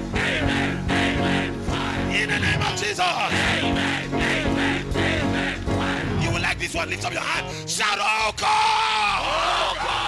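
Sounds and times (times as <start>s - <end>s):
church music over sound system: 0.0s - 10.0s.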